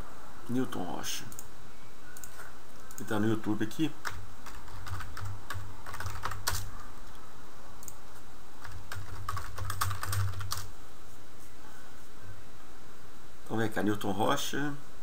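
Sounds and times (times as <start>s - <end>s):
computer keyboard typing: 4.0s - 6.9s, 8.6s - 10.7s.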